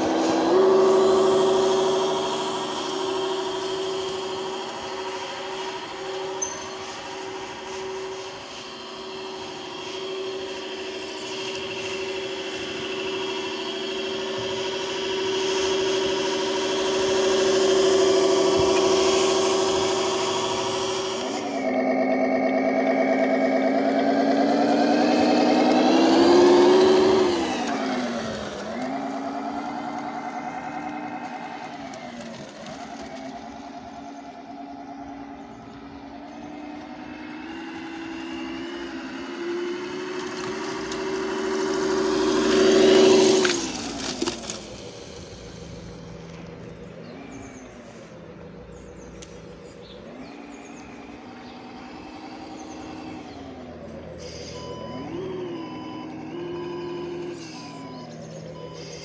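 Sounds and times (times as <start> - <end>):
sampled diesel engine revving: 0.0 - 59.0.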